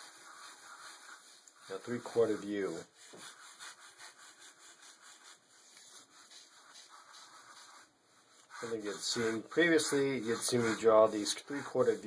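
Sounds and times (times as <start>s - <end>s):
ballpoint pen scratching paper: 0.0s - 12.0s.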